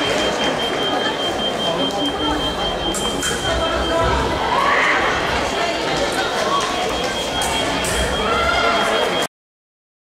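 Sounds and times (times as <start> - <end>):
steady high electronic tone: 0.0 - 5.0
many voices and calls: 0.0 - 9.3.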